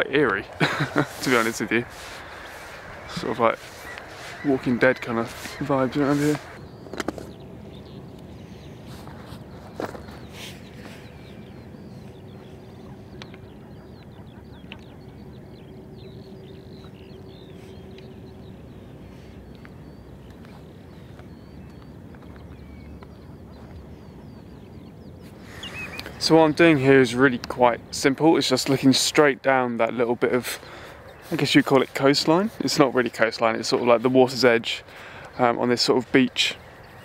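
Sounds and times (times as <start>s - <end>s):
distant birds chirping: 0.0s - 37.0s
low outdoor rumble: 0.0s - 37.0s.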